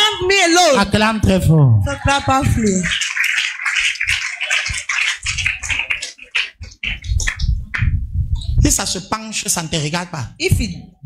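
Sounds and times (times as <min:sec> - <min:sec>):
man's amplified voice: 0:00.0 - 0:03.0, 0:08.6 - 0:11.0.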